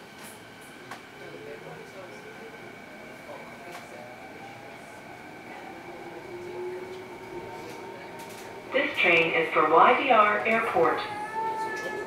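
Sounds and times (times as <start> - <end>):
train rolling rumble: 0.0 - 12.0.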